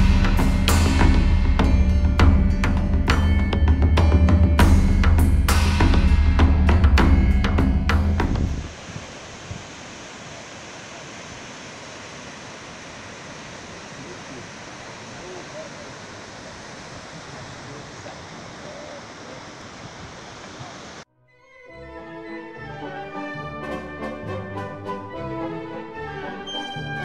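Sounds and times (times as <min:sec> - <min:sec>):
drum-led music: 0:00.0 - 0:08.7
small waves breaking on sand: 0:08.7 - 0:21.0.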